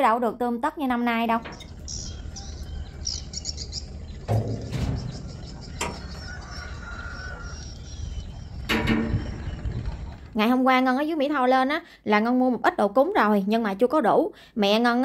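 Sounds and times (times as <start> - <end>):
low steady rumble: 0.2 - 11.4
small birds chirping: 1.0 - 10.7
steel door knocks and clanks: 1.3 - 3.0, 3.8 - 7.3, 8.5 - 10.2.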